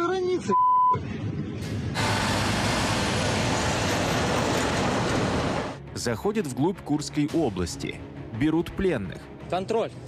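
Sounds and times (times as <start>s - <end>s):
tyre and road noise: 1.3s - 5.8s.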